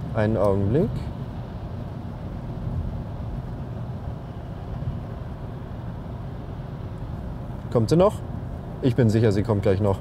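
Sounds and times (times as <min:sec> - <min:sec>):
road and tyre noise in car: 0:00.0 - 0:10.0.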